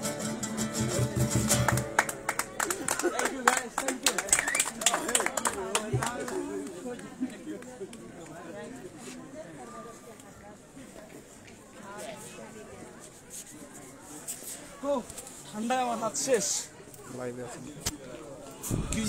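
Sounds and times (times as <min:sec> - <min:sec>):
quiet street background: 0:00.0 - 0:19.0.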